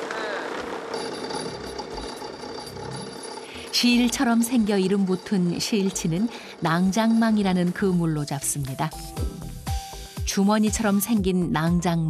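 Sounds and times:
boat machinery hum: 0.0s - 9.2s.

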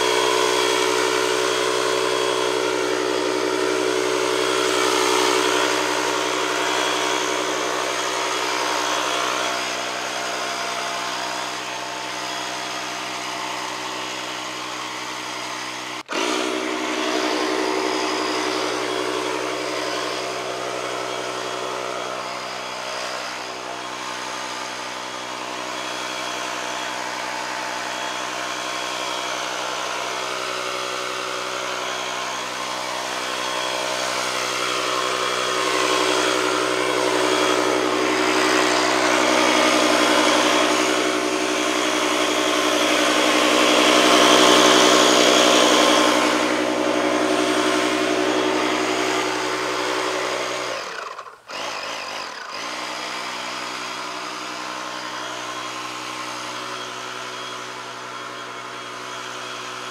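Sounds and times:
fogger motor whine: 0.0s - 59.9s.

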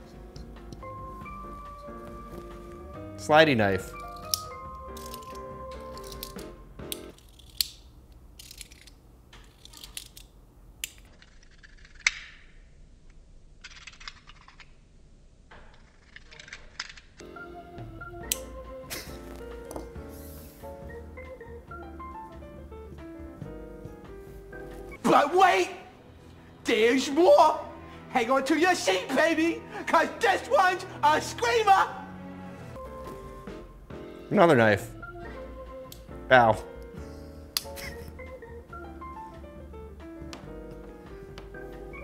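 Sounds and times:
background music: 0.0s - 7.8s, 17.2s - 42.0s
utility knife blade slider clicks: 4.0s - 5.4s, 6.0s - 7.8s.

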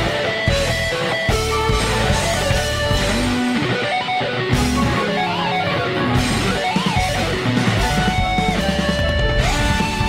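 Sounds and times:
rock song with band: 0.0s - 10.0s
sliding guitar melody: 0.0s - 10.0s.

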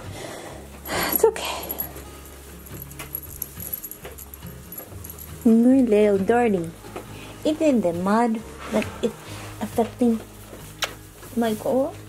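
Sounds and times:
metal collar fitting jingling: 1.7s - 6.0s.

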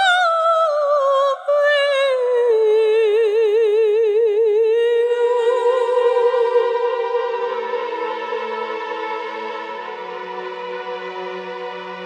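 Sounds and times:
woman singing with vibrato: 0.0s - 9.6s.

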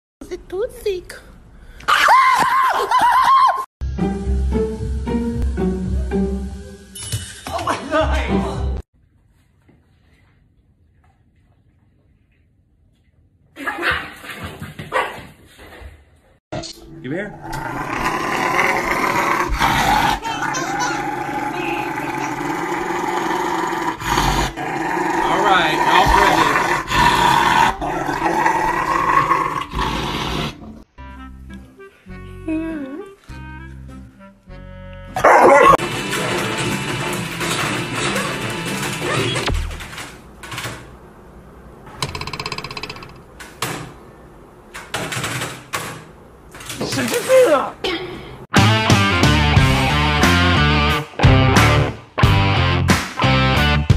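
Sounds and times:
music: 3.8s - 8.8s, 16.6s - 17.4s, 30.6s - 39.5s, 48.5s - 53.9s
dog growling: 17.4s - 30.7s.

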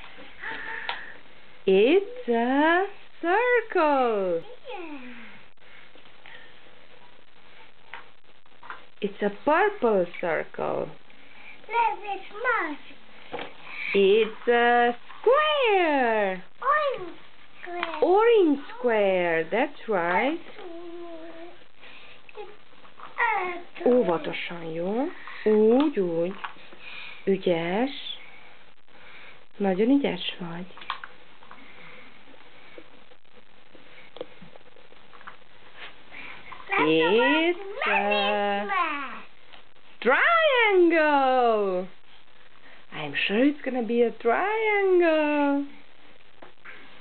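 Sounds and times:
room hiss: 0.0s - 47.0s.

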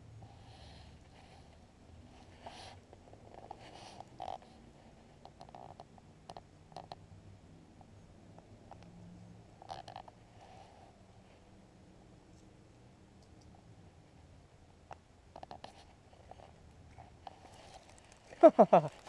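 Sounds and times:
quiet background hum: 0.0s - 19.0s.

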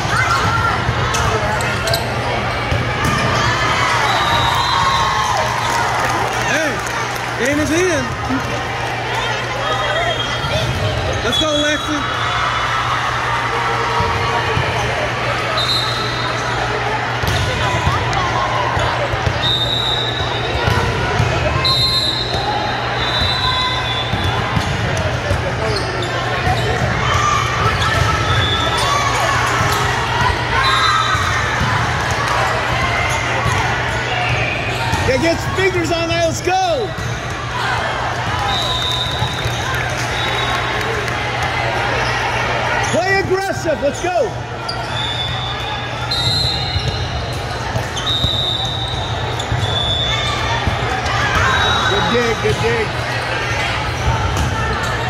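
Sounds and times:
volleyballs hit and bouncing: 0.0s - 3.7s, 50.4s - 55.0s
echoing voices in a hall: 11.9s - 55.0s.

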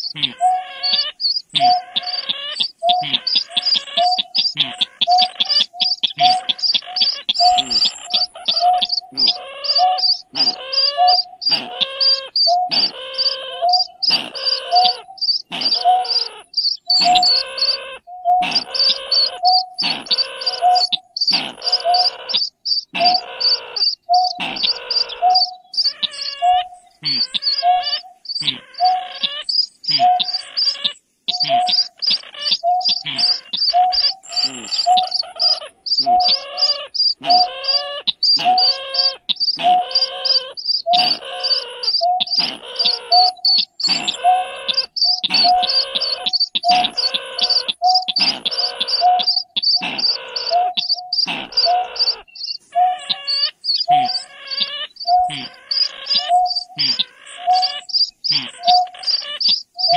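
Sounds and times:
recorded bird calls: 0.0s - 59.9s
rising sweeping bird calls: 0.0s - 59.9s.

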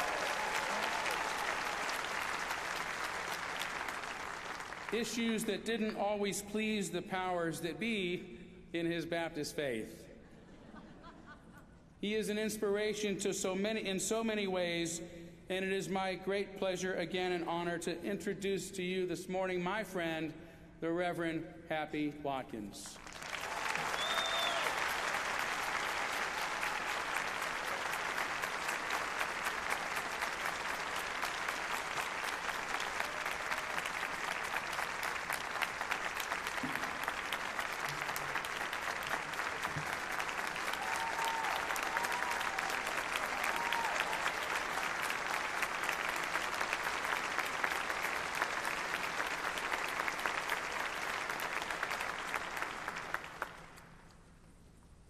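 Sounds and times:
large audience applauding: 0.0s - 5.6s, 23.0s - 53.9s.

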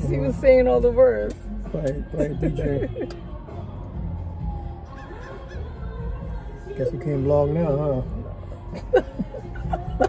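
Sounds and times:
r and b music with heavy bass: 0.0s - 10.0s
man talking: 1.7s - 3.0s.

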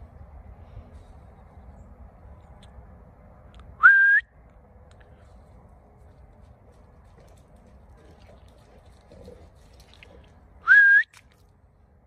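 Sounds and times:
rising whistle: 3.8s - 4.3s, 10.6s - 11.1s.

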